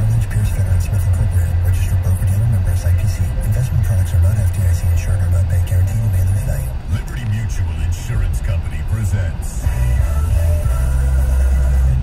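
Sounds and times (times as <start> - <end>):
music on car radio: 0.0 - 12.0.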